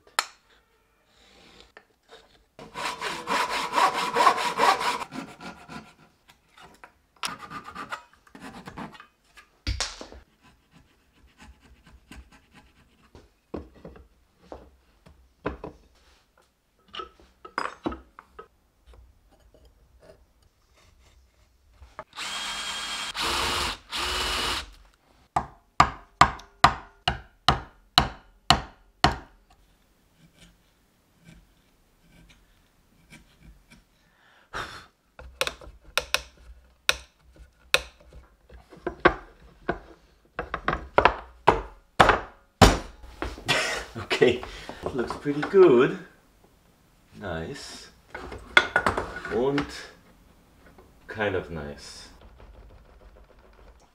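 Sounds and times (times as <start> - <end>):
blade rasping on wood: 2.6 - 6.1.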